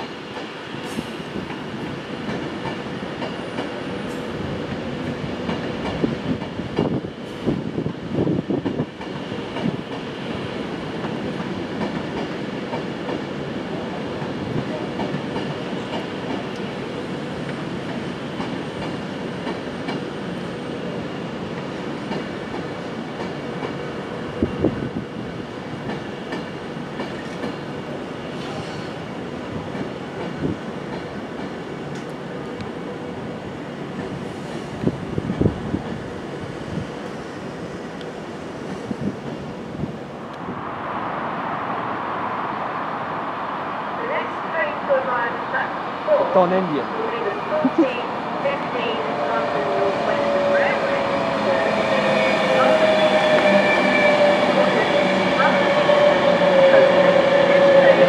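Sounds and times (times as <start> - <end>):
electric train rolling hum: 0.0 - 58.0.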